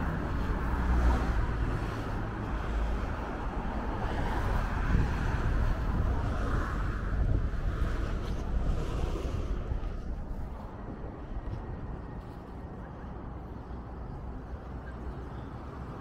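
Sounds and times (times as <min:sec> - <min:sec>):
street traffic noise: 0:00.0 - 0:16.0.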